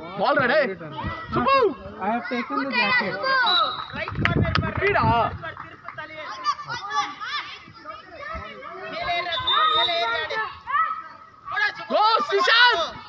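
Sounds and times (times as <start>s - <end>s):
children calling and shouting: 0.0s - 4.2s, 4.9s - 13.0s.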